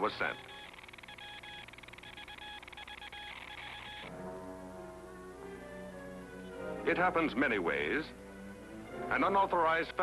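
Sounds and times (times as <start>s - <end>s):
buzzing morse code tone: 0.0s - 4.1s.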